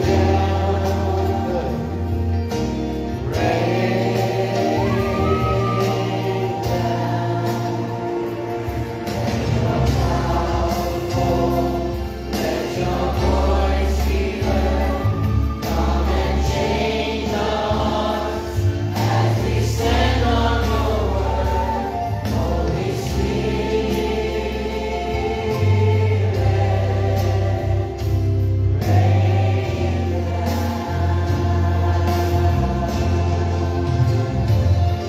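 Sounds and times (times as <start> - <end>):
choir singing gospel music: 0.0 - 35.0.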